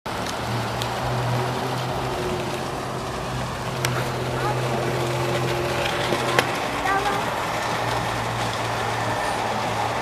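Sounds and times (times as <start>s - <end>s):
car wash low hum: 0.1s - 10.0s
spraying water and spinning brushes: 0.1s - 10.0s.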